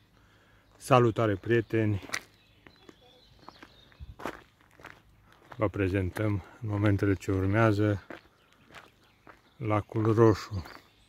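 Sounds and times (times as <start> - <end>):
footsteps on a dirt path: 0.2 - 11.0.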